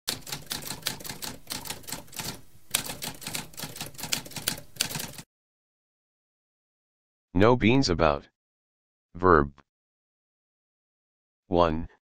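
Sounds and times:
typewriter keys clacking: 0.1s - 5.2s.

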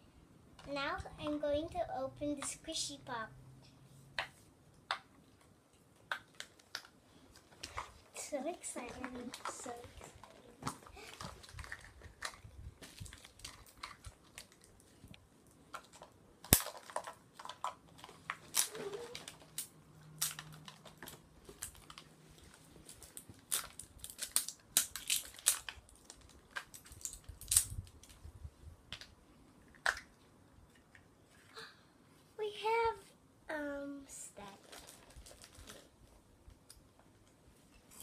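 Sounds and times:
plastic and cardboard crackling: 6.1s - 28.3s, 34.4s - 36.2s.

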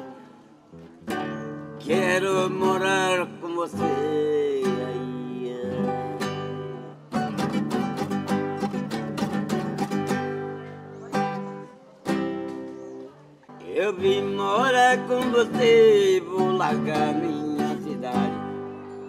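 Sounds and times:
acoustic guitar strumming: 0.0s - 19.0s
man singing: 1.8s - 6.8s, 13.6s - 18.8s.

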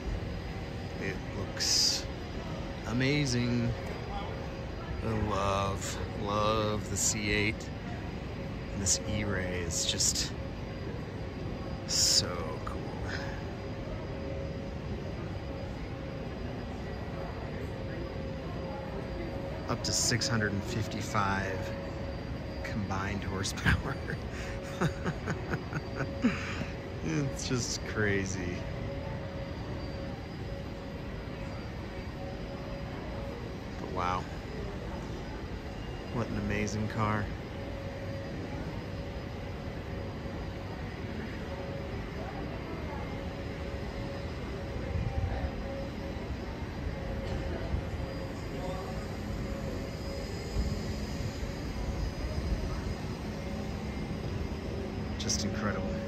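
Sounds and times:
constant low rumble: 0.0s - 56.0s
thin steady hum: 0.0s - 56.0s.

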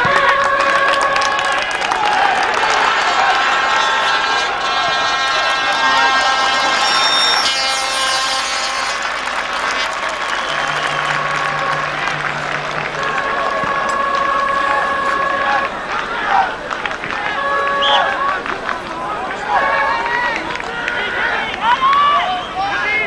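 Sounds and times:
crowd cheering and chanting: 0.0s - 23.0s.

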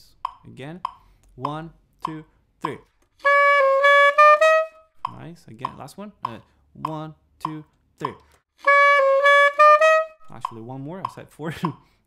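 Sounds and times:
alto saxophone phrase: 3.2s - 4.8s, 8.6s - 10.6s.

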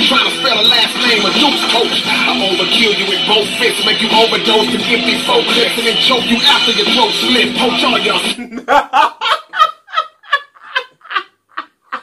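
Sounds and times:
man laughing hard: 8.1s - 12.0s.

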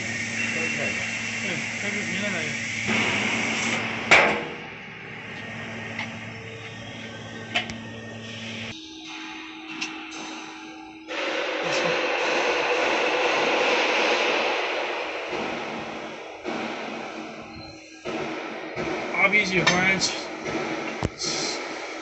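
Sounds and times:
laser cutting head hissing: 0.0s - 3.8s
machine hum: 0.0s - 22.0s.

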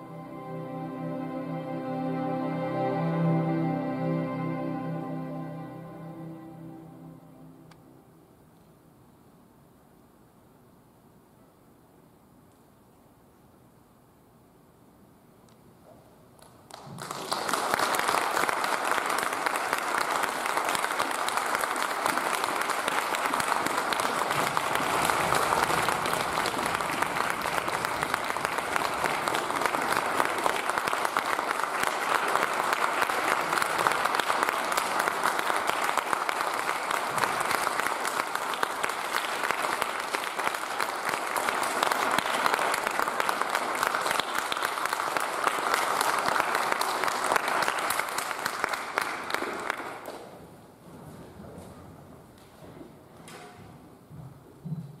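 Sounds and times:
audience applause: 16.7s - 50.2s.

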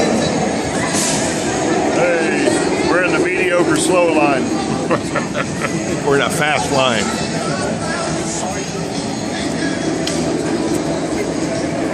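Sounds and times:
loud rumbling noise: 0.0s - 11.9s
people's voices: 0.0s - 11.9s.

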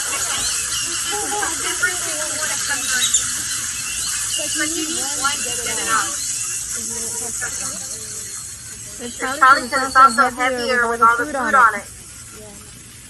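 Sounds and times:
people talking indistinctly: 0.0s - 12.7s
steady high hiss: 0.0s - 13.0s.

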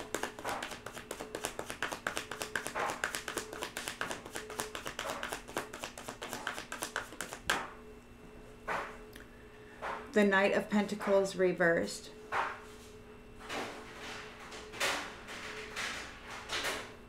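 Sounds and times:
cards being shuffled: 0.0s - 7.7s
cards swishing: 0.0s - 7.7s.

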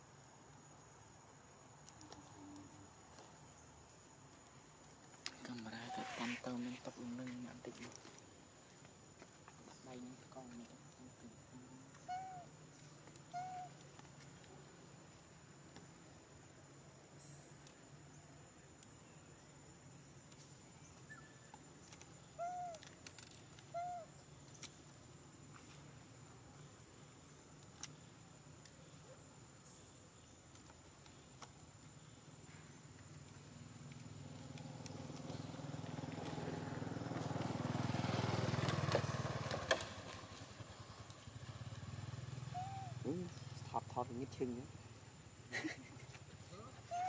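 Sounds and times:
quiet forest background: 0.0s - 47.0s
faint ticks: 1.8s - 3.3s
hoot-like animal calls: 12.0s - 12.5s, 42.5s - 43.1s, 46.6s - 47.0s
motorcycle engine passing by: 34.1s - 43.7s.

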